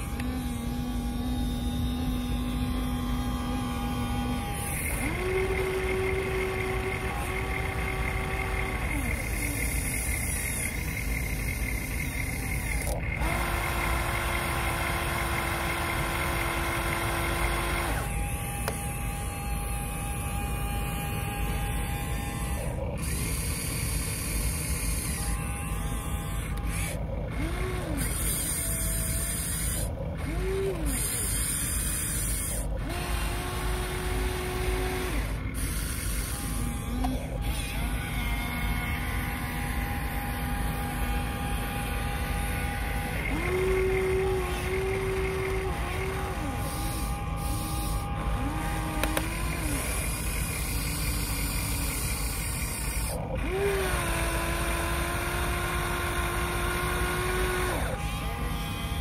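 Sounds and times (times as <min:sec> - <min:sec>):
toy excavator motors whining: 0:00.0 - 0:59.0.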